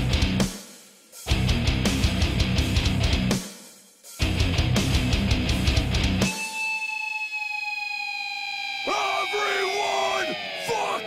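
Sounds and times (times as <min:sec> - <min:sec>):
heavy metal band playing: 0:00.0 - 0:00.6, 0:01.2 - 0:03.4, 0:04.2 - 0:06.6, 0:08.8 - 0:11.0
electric guitar feedback tone: 0:04.2 - 0:11.0
person shouting: 0:08.9 - 0:11.0.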